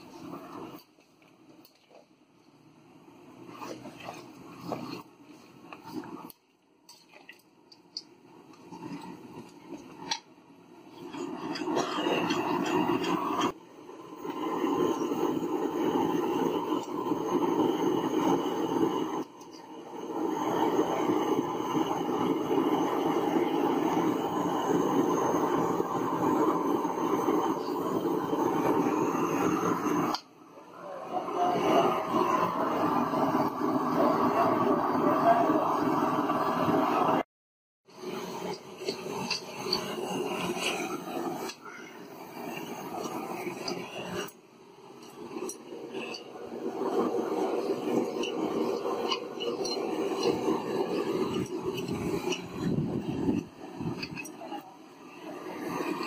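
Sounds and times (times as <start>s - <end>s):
pan hissing over fire: 0.0s - 2.0s, 2.8s - 37.2s, 37.8s - 56.0s.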